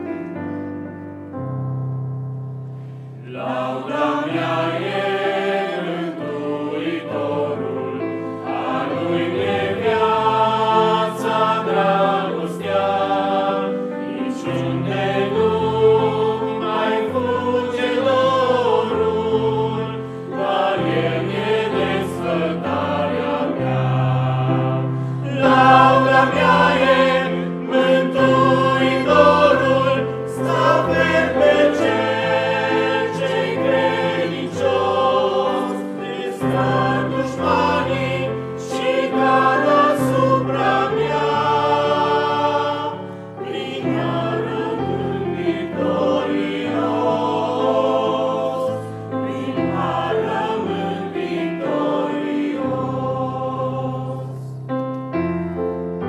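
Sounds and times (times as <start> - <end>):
choir singing in harmony: 0.0 - 1.4, 2.0 - 56.0.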